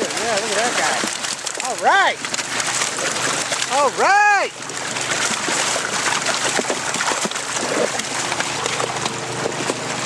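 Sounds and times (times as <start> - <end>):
fish knocking and slapping: 0.0 - 10.0
water rushing down metal chute: 0.0 - 10.0.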